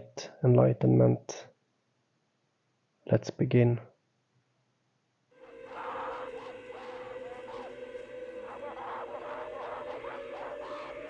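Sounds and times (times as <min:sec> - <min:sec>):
eerie film score music: 0:05.4 - 0:11.0
wavering voices sliding: 0:05.4 - 0:11.0.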